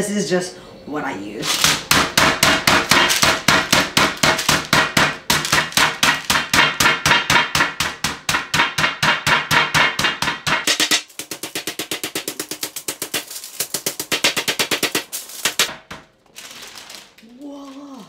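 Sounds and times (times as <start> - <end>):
fist pounding meat on glass: 1.6 - 16.0.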